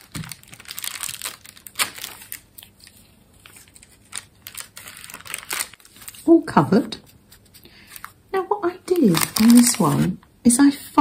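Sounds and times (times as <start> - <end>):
paper rustling and crackling: 0.0 - 8.2, 8.9 - 10.2.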